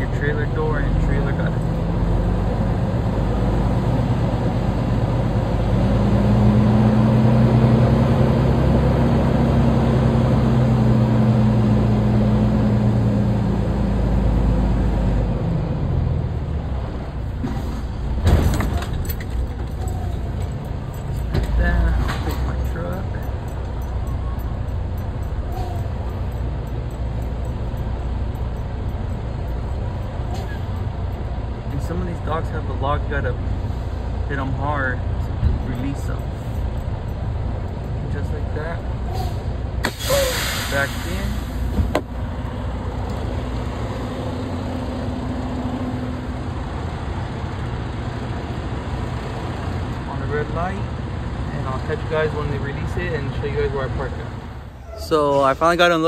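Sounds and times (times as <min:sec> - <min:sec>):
diesel truck engine running: 0:00.0 - 0:56.0.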